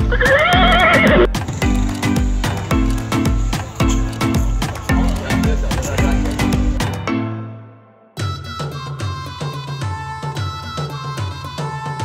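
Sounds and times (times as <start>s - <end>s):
horse whinnying: 0.0s - 1.3s
background music with steady beat: 0.0s - 12.0s.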